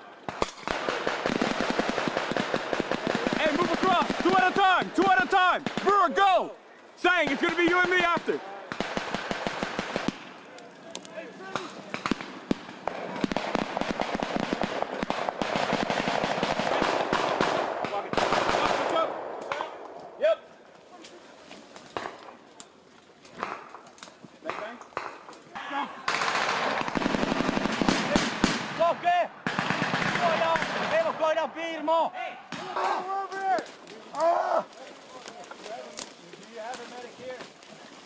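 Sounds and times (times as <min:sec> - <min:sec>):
automatic gunfire: 0:00.3 - 0:04.6, 0:07.2 - 0:10.2, 0:11.9 - 0:19.2, 0:26.1 - 0:28.8, 0:29.4 - 0:31.1.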